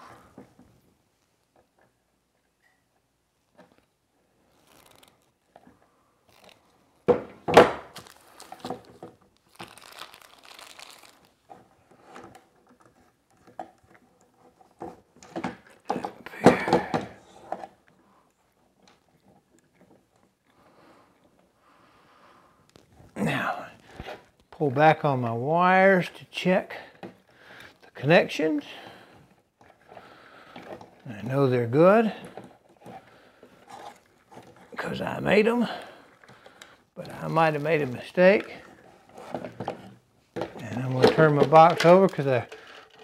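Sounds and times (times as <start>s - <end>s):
wires being handled: 3.5s - 7.2s, 7.9s - 21.5s, 27.1s - 43.0s.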